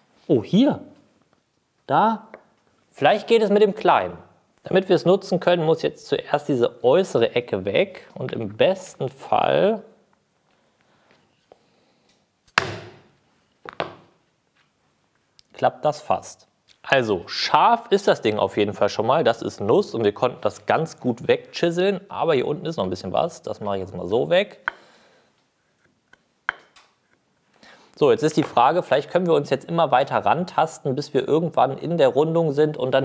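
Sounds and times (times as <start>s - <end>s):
chisel paring wood: 12.5s - 13.0s, 26.5s - 26.8s.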